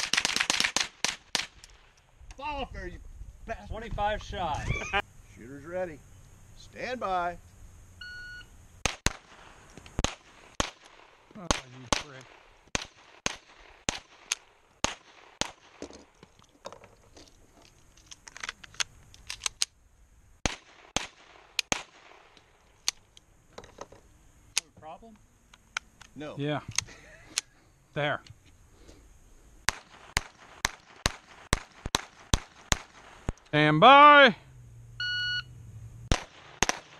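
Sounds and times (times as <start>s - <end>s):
pistols firing rapidly: 0.0s - 1.6s, 10.0s - 15.8s, 20.4s - 22.2s, 29.7s - 33.2s, 36.1s - 36.9s
electronic start beep: 8.0s - 8.5s, 35.0s - 35.5s.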